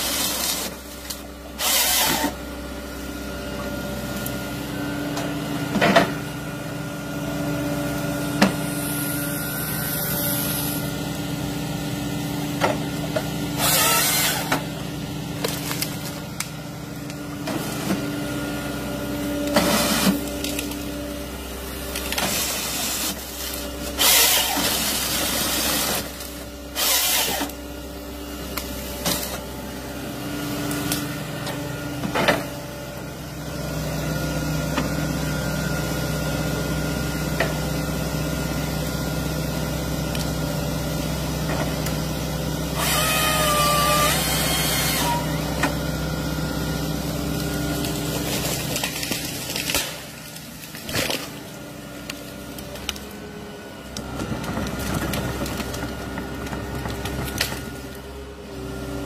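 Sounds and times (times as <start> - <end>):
excavator diesel engine and hydraulics: 0.0 - 59.0
machine whine: 7.3 - 11.6.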